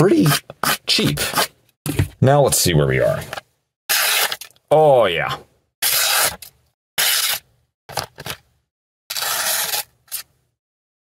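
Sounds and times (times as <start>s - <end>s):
knife blade slicing paper: 3.9s - 4.5s, 5.8s - 7.5s, 9.1s - 10.3s.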